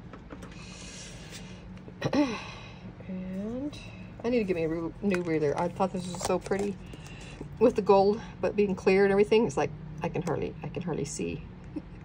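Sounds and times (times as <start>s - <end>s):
low steady hum: 0.0s - 12.0s
soft handling rustling: 3.4s - 7.8s.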